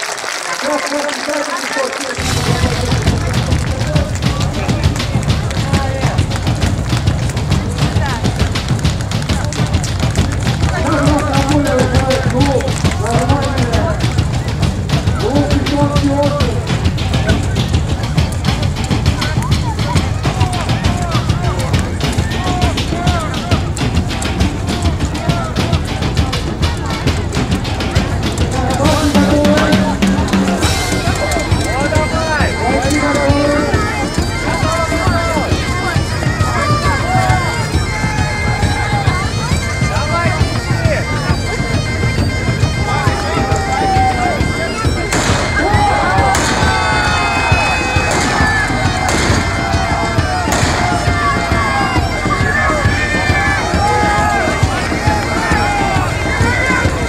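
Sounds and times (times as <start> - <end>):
bagpipes playing: 0.0 - 57.0
crowd voices: 0.0 - 57.0.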